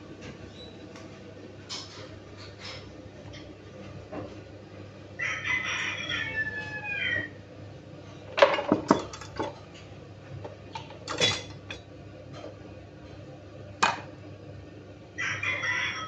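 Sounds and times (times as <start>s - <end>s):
rooster crowing: 5.2s - 7.4s, 15.2s - 16.0s
dishes clinking and knocking: 8.3s - 9.6s, 10.7s - 12.5s, 13.8s - 14.1s.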